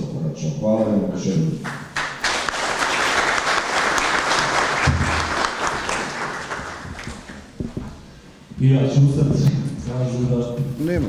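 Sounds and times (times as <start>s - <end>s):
audience applauding: 1.7s - 7.6s.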